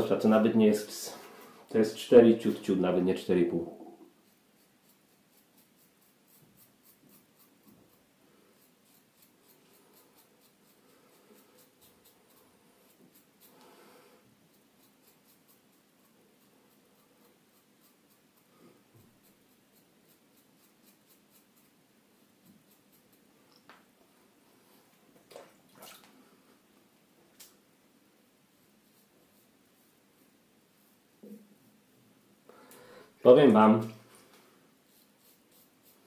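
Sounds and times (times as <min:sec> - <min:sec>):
razor cutting stubble: 0:04.1 - 0:23.7, 0:34.8 - 0:36.0.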